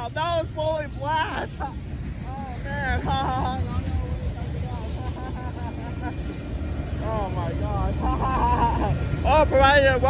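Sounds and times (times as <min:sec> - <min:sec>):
freight cars rolling on rails: 0:00.0 - 0:10.0.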